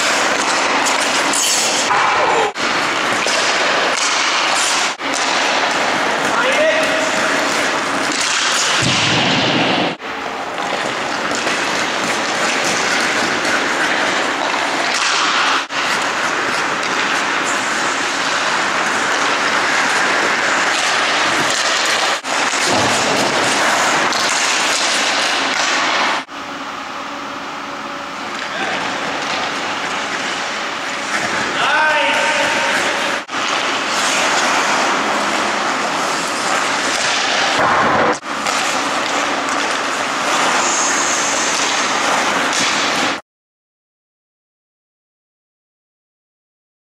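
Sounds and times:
skate blades scraping ice: 0:00.0 - 0:08.9, 0:09.8 - 0:26.3, 0:28.4 - 0:43.2.

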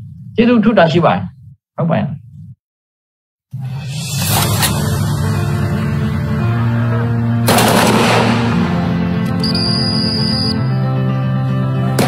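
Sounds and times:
dramatic background music: 0:04.1 - 0:12.0.

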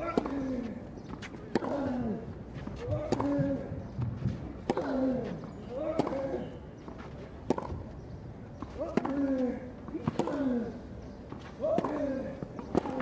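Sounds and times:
racket striking tennis ball: 0:00.0 - 0:00.6, 0:01.2 - 0:02.1, 0:02.8 - 0:03.7, 0:04.5 - 0:05.1, 0:05.8 - 0:06.4, 0:07.4 - 0:07.8, 0:08.7 - 0:10.6, 0:11.6 - 0:13.0.

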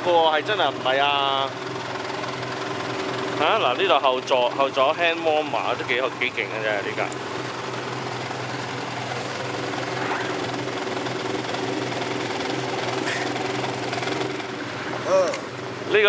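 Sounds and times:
vehicle engine idling: 0:00.0 - 0:16.0.

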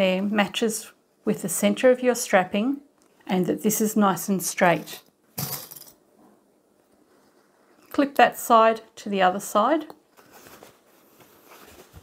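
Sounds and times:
fabric rustling: 0:10.1 - 0:12.0.

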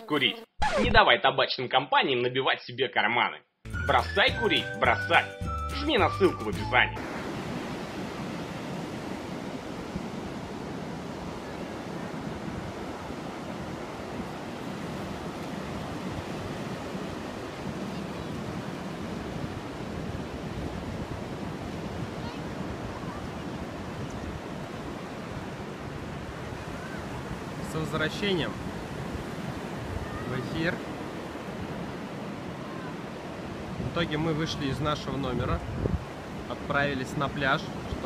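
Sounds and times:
ocean surf breaking: 0:07.0 - 0:38.0
wind on microphone: 0:07.1 - 0:27.6, 0:28.6 - 0:34.0, 0:35.3 - 0:36.4.

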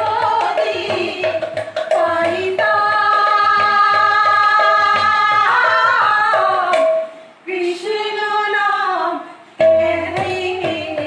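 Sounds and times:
hand drum playing: 0:00.0 - 0:07.1, 0:09.6 - 0:11.0
women singing devotional song: 0:00.0 - 0:11.0.

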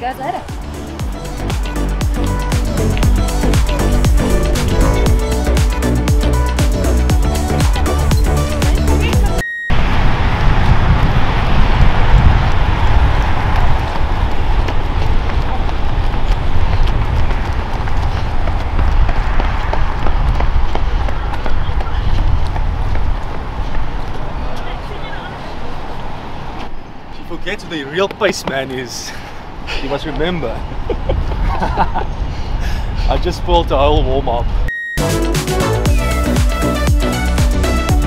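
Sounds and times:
electronic background music: 0:00.0 - 0:09.8, 0:34.7 - 0:38.0
wind rumble on microphone: 0:09.3 - 0:26.9, 0:30.5 - 0:34.7.

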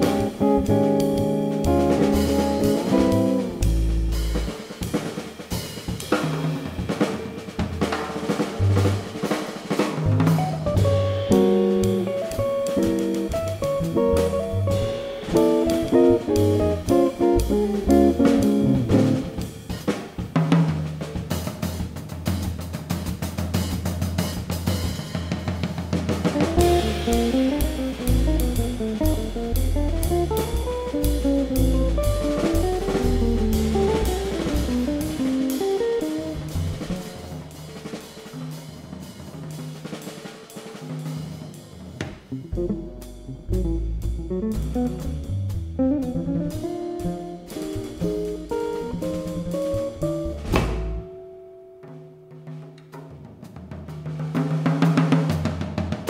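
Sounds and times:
electric guitar: 0:00.0 - 0:04.0, 0:10.6 - 0:19.4
upright double bass: 0:00.0 - 0:06.4, 0:08.3 - 0:19.9, 0:26.2 - 0:37.6, 0:42.0 - 0:51.2
drum kit with cymbals and snare: 0:00.0 - 0:56.0.

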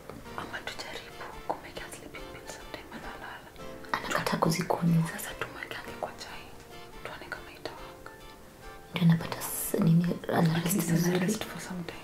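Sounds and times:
soft background music: 0:00.0 - 0:12.0
woman speaking quietly: 0:09.0 - 0:12.0.

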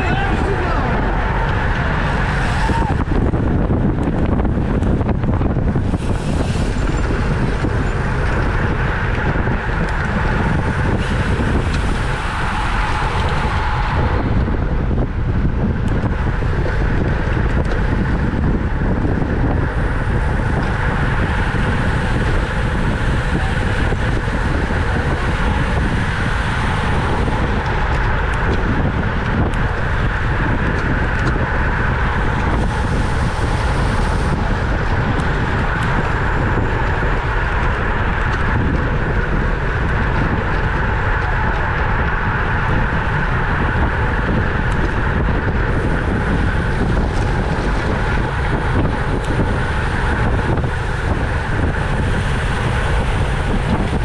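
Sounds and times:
bike tyre and road noise: 0:00.0 - 0:54.0
wind rush on microphone: 0:00.0 - 0:54.0.

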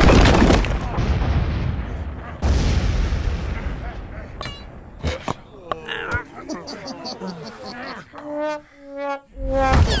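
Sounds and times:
rock crumbling and rubble falling: 0:00.0 - 0:01.4
high voice-like squeak: 0:08.2 - 0:10.0.

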